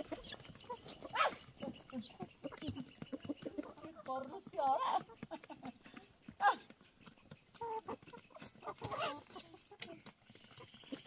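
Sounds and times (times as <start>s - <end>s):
hens clucking: 0.0s - 11.0s.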